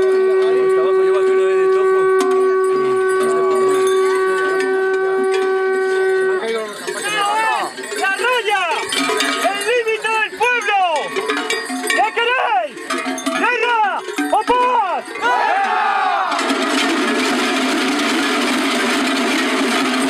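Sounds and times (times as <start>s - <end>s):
horn long steady note: 0.0s - 6.7s
large bells clanking: 0.0s - 20.0s.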